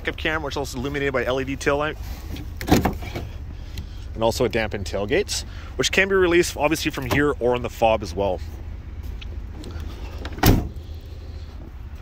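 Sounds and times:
tailgate slamming shut: 2.6s - 3.3s, 10.2s - 10.8s.

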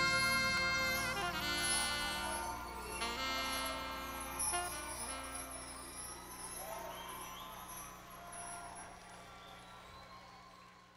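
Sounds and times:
band playing live: 0.0s - 5.5s
audience voices: 0.0s - 10.9s.

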